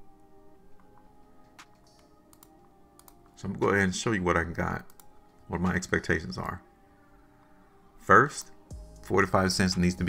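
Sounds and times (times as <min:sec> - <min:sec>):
faint background music: 0:00.0 - 0:10.0
faint computer mouse clicks: 0:01.6 - 0:03.3.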